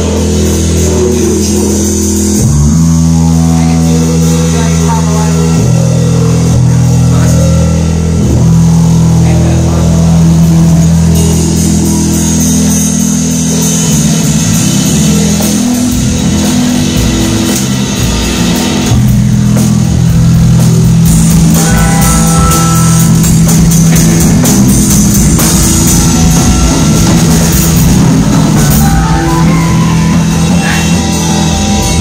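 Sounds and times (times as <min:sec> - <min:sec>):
rock band music: 0:00.0 - 0:32.0.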